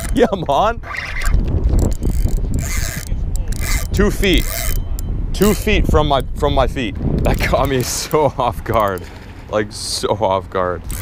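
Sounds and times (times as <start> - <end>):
fishing reel scraping: 0.0 - 0.2, 0.8 - 5.7, 7.3 - 9.6
steady low rumble: 0.0 - 11.0.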